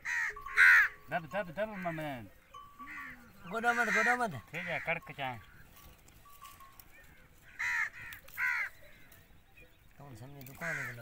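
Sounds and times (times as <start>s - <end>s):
crow cawing: 0.0s - 5.6s, 7.0s - 9.1s, 10.5s - 11.0s.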